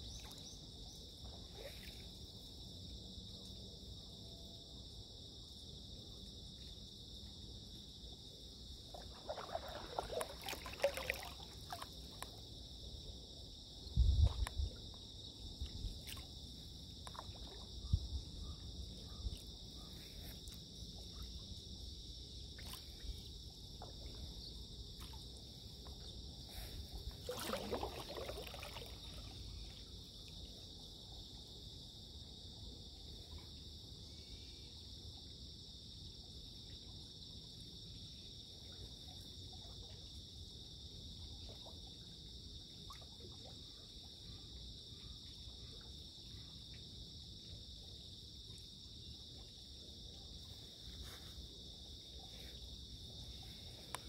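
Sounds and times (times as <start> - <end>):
insect chorus: 0.0 - 54.0
water swishing: 8.9 - 12.2, 26.6 - 29.8
paddle strokes dripping: 8.9 - 12.4, 25.0 - 29.9.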